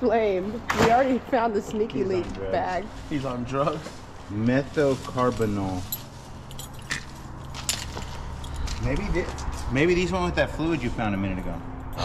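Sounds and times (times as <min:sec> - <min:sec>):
metal belt buckles clinking: 0:05.0 - 0:10.0.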